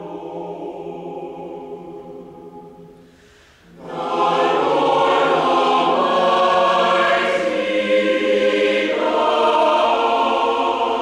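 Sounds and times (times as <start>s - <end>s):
mixed choir singing: 0.0s - 3.0s, 3.7s - 11.0s.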